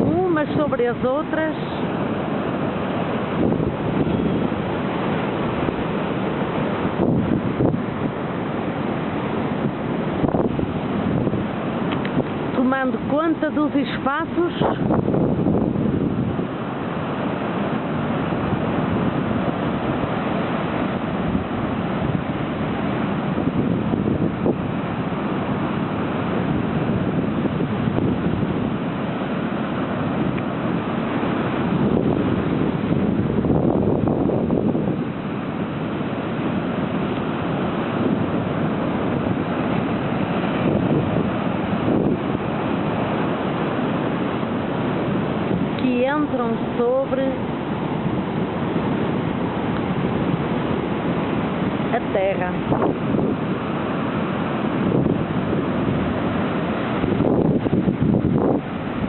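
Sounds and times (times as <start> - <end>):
surf breaking over rocks: 0.0 - 59.0
wind buffeting microphone: 0.0 - 59.0.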